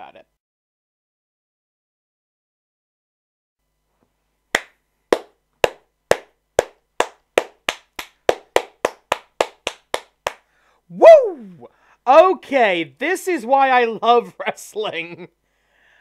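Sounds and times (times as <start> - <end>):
person clapping: 4.6 - 10.4.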